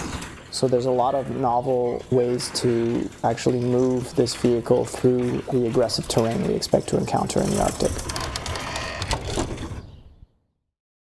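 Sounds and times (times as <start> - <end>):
garage door mechanism rattling: 0.0 - 10.2.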